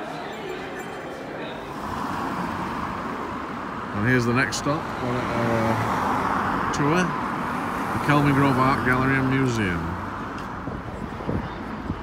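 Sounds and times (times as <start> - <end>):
road traffic noise: 0.0 - 12.0
car driving past: 1.7 - 8.9.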